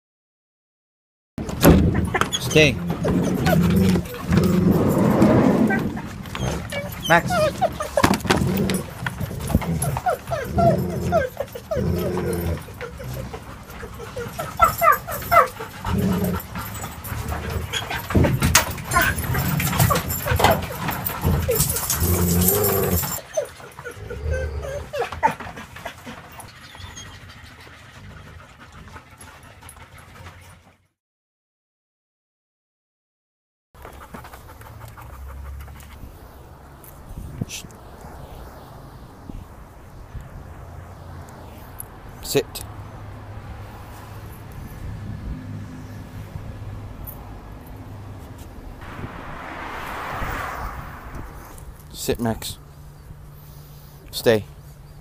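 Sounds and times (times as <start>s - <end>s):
dogs whining and yipping: 1.4s - 30.8s
low rumble: 48.7s - 52.1s.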